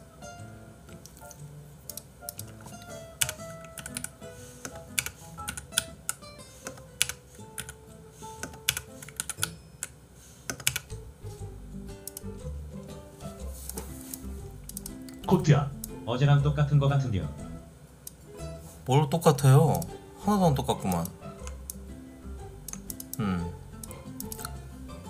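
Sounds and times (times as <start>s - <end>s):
soft background music: 0.0s - 25.0s.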